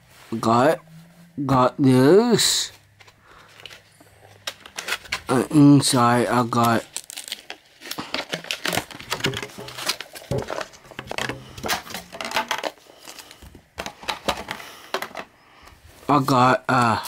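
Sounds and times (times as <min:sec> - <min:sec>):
plastic packaging crinkling: 0:02.6 - 0:14.6.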